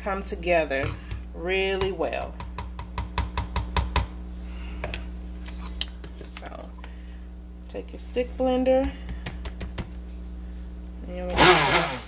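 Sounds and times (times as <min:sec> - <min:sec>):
spoon knocking a plastic jug: 0:01.8 - 0:04.1.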